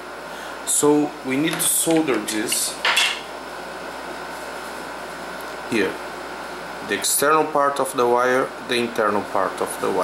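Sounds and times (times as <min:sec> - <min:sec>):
air conditioner hiss: 0:00.0 - 0:10.0.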